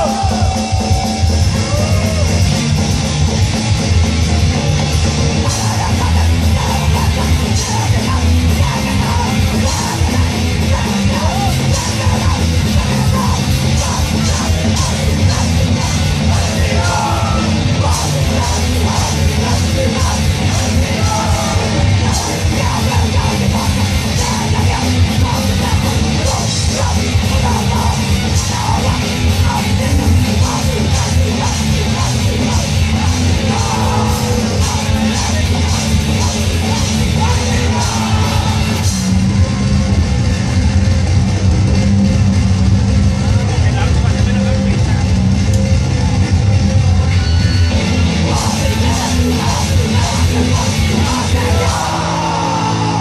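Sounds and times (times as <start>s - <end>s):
shouted lead vocal: 0.0s - 3.1s, 4.3s - 39.4s, 48.2s - 53.0s
distorted guitar and bass: 0.0s - 53.0s
punk band playing live: 0.0s - 53.0s
person shouting vocals: 11.1s - 11.8s.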